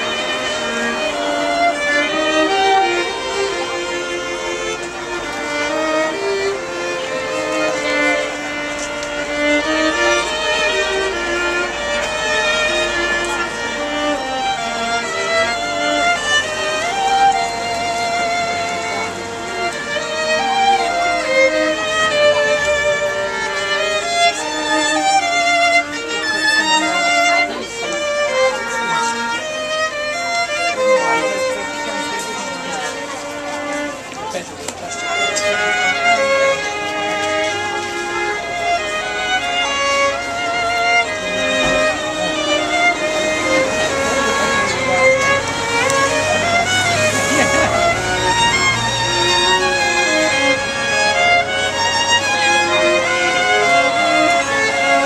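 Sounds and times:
string trio playing: 0.0 - 55.0.

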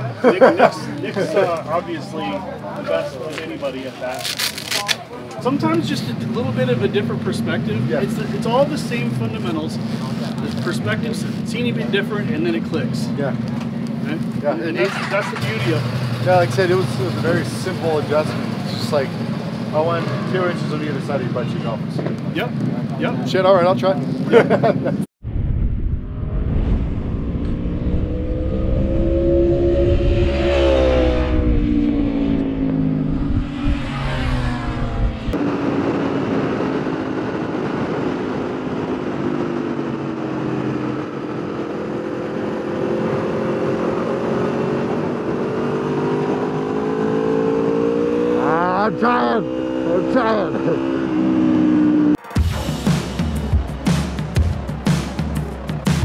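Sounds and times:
motorcycles passing by: 0.0 - 25.0, 27.9 - 52.2
motorcycle whine: 0.0 - 56.0
onboard motorcycle engine revving: 14.7 - 21.6, 27.0 - 54.9.

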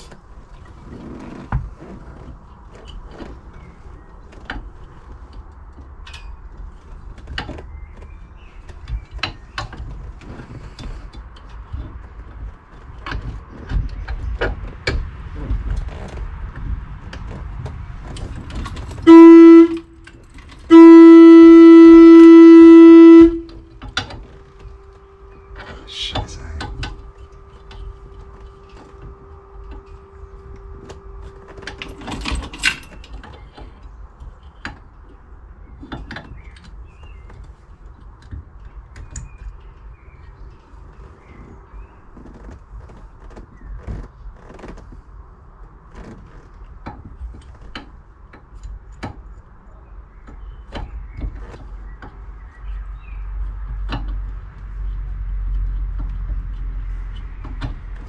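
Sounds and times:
car horn: 19.0 - 23.9.

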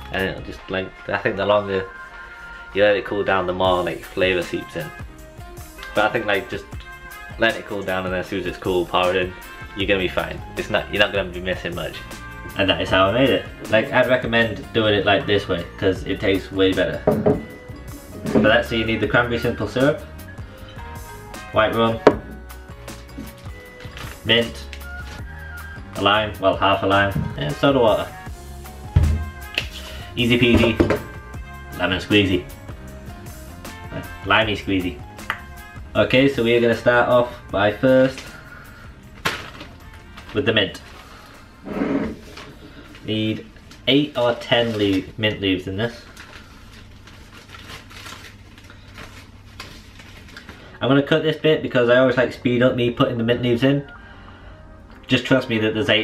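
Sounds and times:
background music: 0.0 - 47.1, 50.5 - 56.0
glass bottle set down: 17.1 - 17.6, 22.0 - 22.4, 30.5 - 31.2
plastic bag rustling: 21.6 - 25.4, 38.5 - 50.8.

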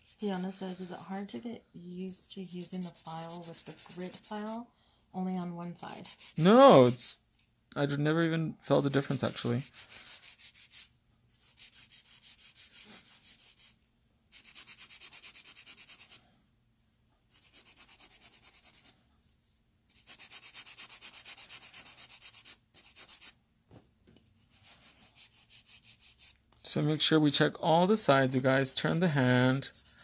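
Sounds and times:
nail file rasping: 2.4 - 4.6, 5.8 - 6.6, 9.6 - 16.2, 19.9 - 23.4, 28.4 - 30.0.

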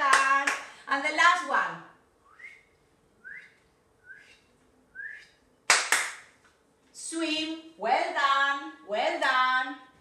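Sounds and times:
short rising whistled notes: 2.3 - 5.4.

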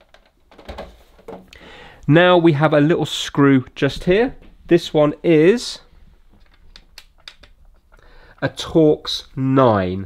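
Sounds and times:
plastic cap clicks and rattles: 6.4 - 7.9.

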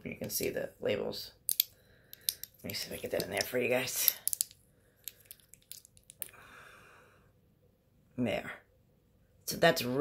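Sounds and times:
glass bottles clicking and tapping: 4.1 - 6.3.

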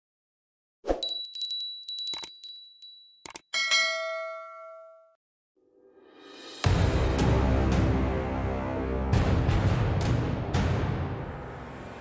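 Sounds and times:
notification bell ringing: 1.0 - 5.2.

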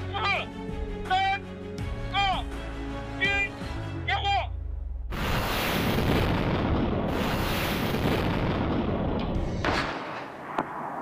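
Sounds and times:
rocket launch roar: 5.1 - 11.0
sharp explosion blasts: 5.1 - 11.0.

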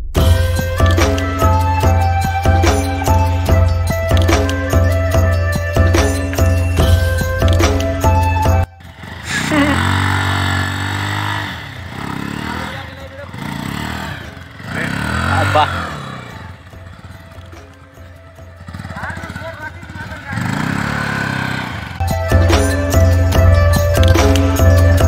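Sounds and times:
motorcycle engine revving: 0.2 - 25.0.

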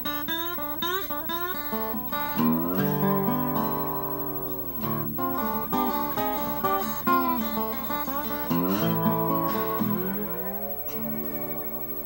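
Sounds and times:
slide acoustic guitar blues: 0.0 - 12.0.

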